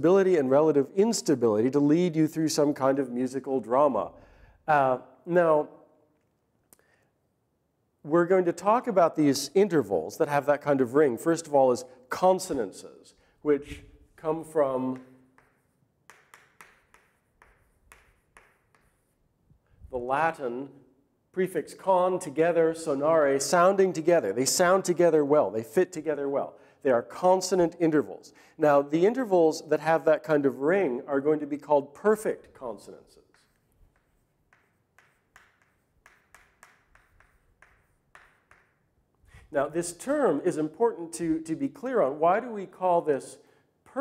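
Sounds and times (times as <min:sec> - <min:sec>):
chalk tapping on blackboard: 0:14.1 - 0:19.6, 0:33.2 - 0:39.4.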